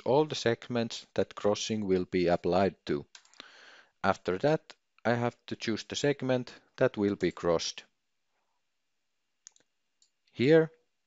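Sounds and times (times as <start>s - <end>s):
computer mouse clicks: 3.1s - 3.5s, 9.4s - 10.2s.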